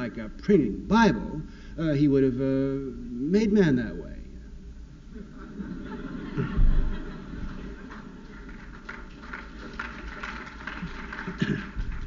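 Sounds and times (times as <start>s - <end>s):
audience clapping: 7.3s - 12.0s.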